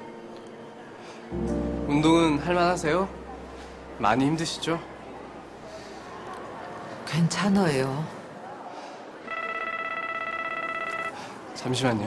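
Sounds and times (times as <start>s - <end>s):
phone ring tone: 9.3s - 11.3s.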